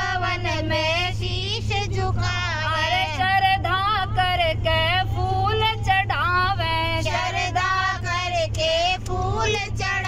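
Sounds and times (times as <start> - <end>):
steady low hum: 0.0 - 10.0
woman singing devotional song: 0.0 - 10.0.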